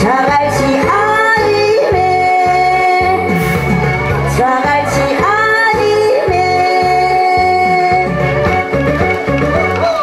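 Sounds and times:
woman singing into a microphone: 0:00.0 - 0:03.6, 0:04.2 - 0:08.4
backing track with bass beat: 0:00.0 - 0:10.0.

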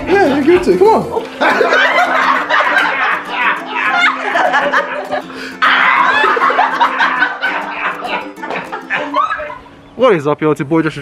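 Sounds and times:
people laughing and exclaiming: 0:00.0 - 0:09.8
background music with held notes: 0:00.0 - 0:10.1.

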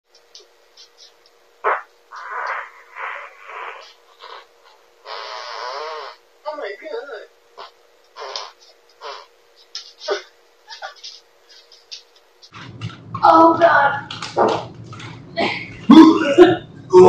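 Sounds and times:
person speaking: 0:12.5 - 0:17.0.

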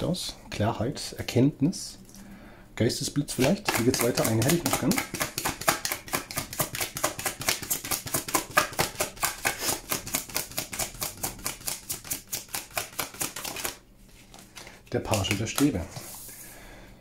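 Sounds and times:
cards being shuffled: 0:03.3 - 0:16.4.

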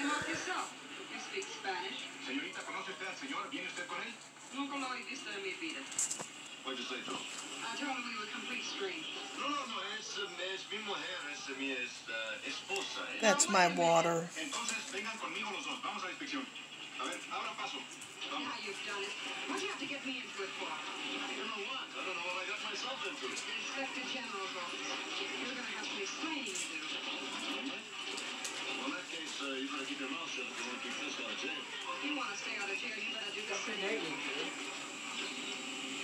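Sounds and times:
television dialogue: 0:00.0 - 0:36.0
television music: 0:00.0 - 0:36.0.

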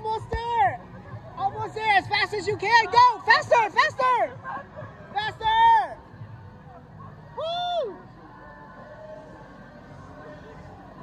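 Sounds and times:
low crowd and street noise: 0:00.0 - 0:11.0
spectator whooping: 0:07.4 - 0:08.0.

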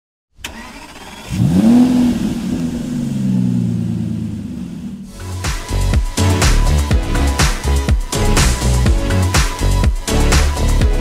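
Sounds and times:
car engine starting and revving: 0:00.4 - 0:07.3
electronic dance music: 0:05.1 - 0:11.0.

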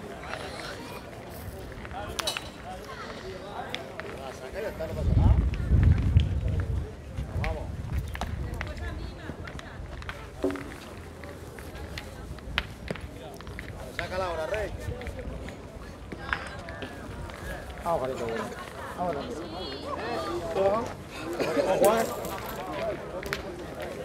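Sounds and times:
men talking and calling out: 0:16.8 - 0:24.0.

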